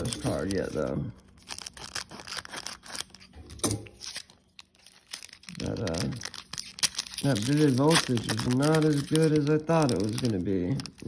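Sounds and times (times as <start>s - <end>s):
foil pack crinkling: 0.0s - 11.0s.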